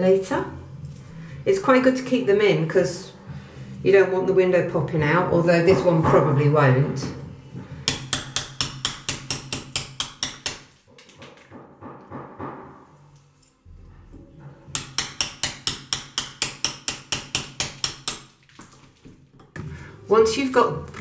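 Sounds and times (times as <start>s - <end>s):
hammer tapping a blade: 7.8s - 10.7s, 14.7s - 18.3s.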